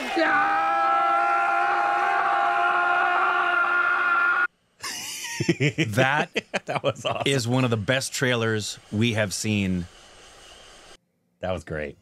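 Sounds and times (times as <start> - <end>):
man's long steady cry: 0.0 - 4.5.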